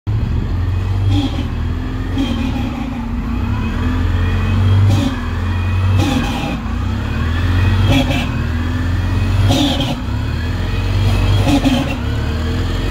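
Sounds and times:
bus engine idling: 0.1s - 12.9s.

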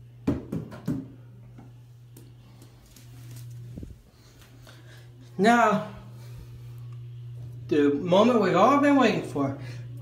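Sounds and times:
bouncy ball knocking on counter: 0.2s - 1.1s
steady low hum: 1.1s - 10.0s.

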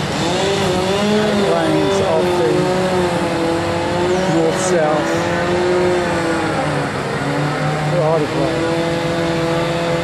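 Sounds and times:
passing vehicle engines: 0.0s - 10.0s.

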